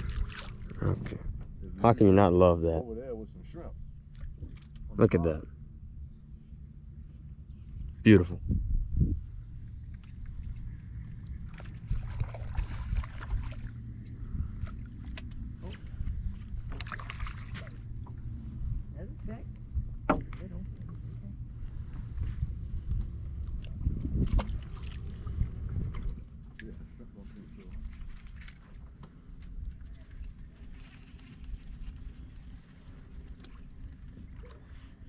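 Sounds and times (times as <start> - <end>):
wind and water against hull: 0.0 - 35.0
knocks on boat: 20.0 - 20.4.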